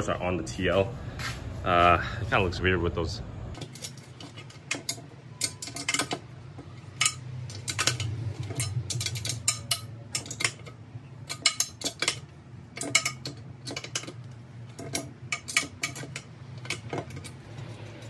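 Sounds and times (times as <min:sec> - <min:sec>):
hex key clinking on metal bolts: 0:03.6 - 0:18.0.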